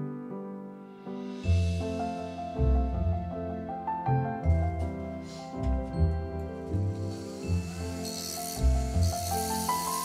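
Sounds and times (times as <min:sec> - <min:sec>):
background music: 0:00.0 - 0:10.0
rotary tool grinding: 0:06.7 - 0:10.0.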